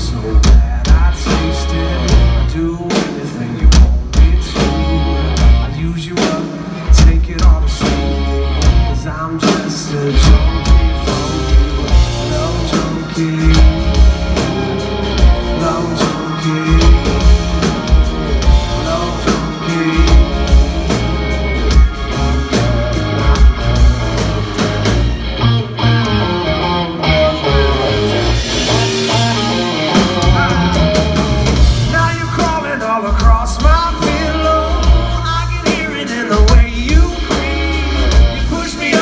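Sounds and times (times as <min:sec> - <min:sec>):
lead vocal singing: 0:00.0 - 0:25.1, 0:27.0 - 0:39.0
bass guitar: 0:00.0 - 0:39.0
drum kit: 0:00.0 - 0:39.0
electric guitar: 0:00.0 - 0:39.0.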